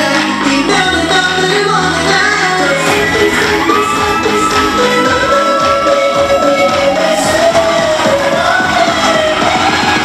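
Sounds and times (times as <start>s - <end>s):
dance track over sound system: 0.0s - 10.0s.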